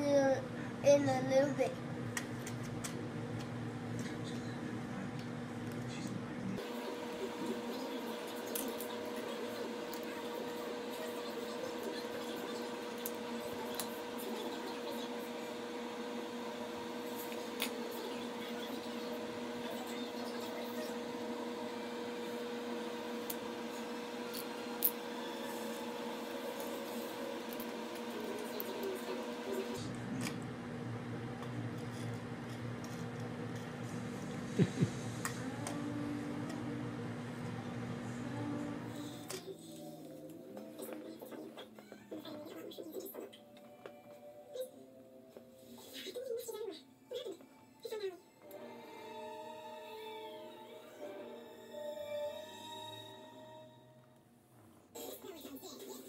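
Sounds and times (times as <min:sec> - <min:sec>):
room hum: 0:00.0 - 0:56.0.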